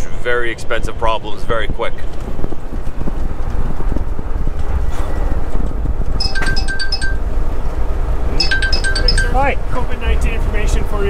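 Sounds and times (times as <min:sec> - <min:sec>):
road noise: 0:00.0 - 0:11.0
diesel truck engine rumble: 0:02.7 - 0:11.0.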